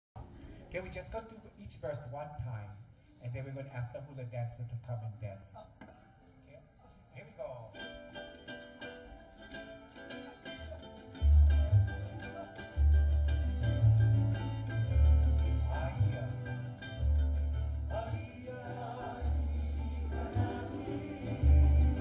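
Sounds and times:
ukulele strummed: 7.7s - 22.0s
deep bass notes: 11.2s - 22.0s.

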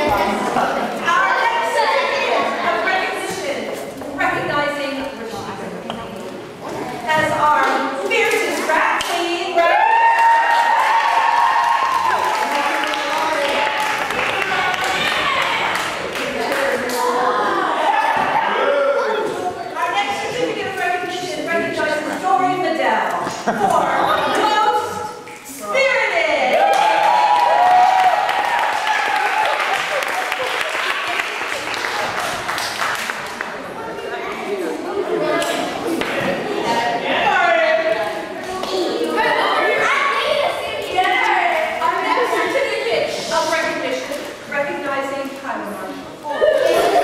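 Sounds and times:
crowd applauding: 9.8s - 17.0s, 26.5s - 33.6s
children clapping: 9.9s - 17.2s, 26.5s - 33.6s.

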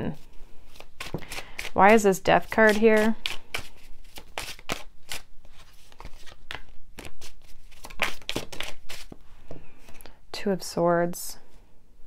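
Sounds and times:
cards being shuffled: 0.2s - 9.2s.

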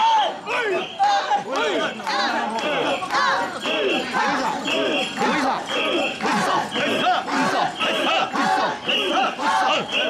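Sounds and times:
people chanting in unison: 0.0s - 10.0s.

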